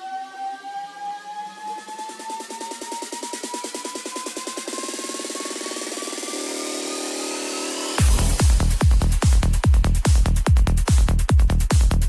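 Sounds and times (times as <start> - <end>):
rising whistling tone: 0.0 - 8.0.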